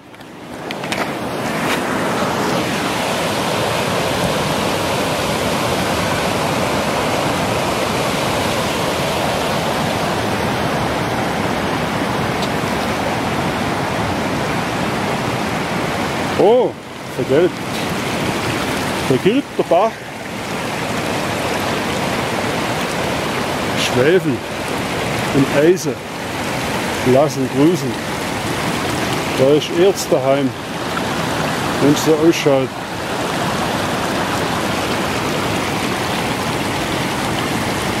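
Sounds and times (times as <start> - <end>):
stream running over stones: 0.0 - 38.0.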